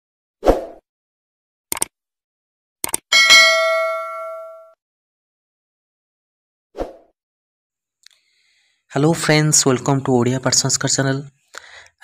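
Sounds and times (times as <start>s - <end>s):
quick double clicks: 1.7s - 1.9s, 2.8s - 3.0s
bell ding: 3.1s - 4.8s.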